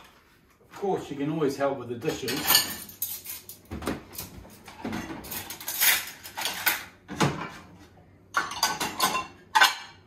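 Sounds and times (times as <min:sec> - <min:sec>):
dishes and cutlery clinking: 0:02.0 - 0:10.0.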